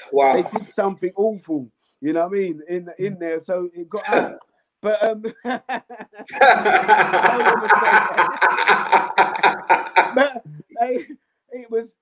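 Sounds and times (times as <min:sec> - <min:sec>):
men laughing: 0:00.0 - 0:00.9, 0:04.0 - 0:11.1.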